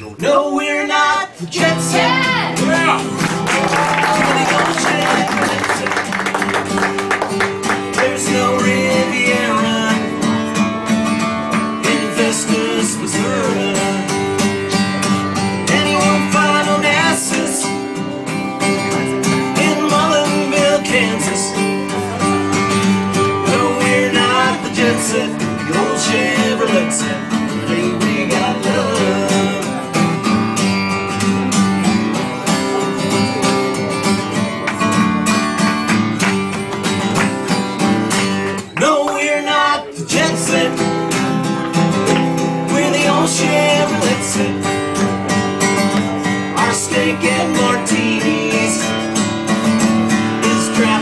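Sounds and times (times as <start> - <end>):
person singing: 0.0 - 6.4, 7.7 - 10.6, 11.6 - 30.2, 38.5 - 41.2, 42.0 - 49.2, 50.2 - 51.0
strummed acoustic guitar: 0.0 - 51.0
backing band: 1.4 - 51.0.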